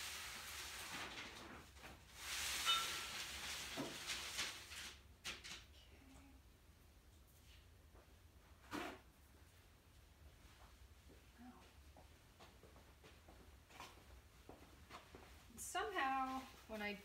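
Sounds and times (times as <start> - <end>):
faint low hum: 5.7 - 17.0.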